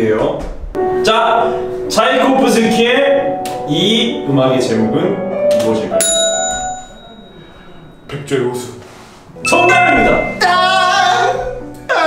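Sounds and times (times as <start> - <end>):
small bell ding: 6.0 - 8.3, 9.5 - 10.6.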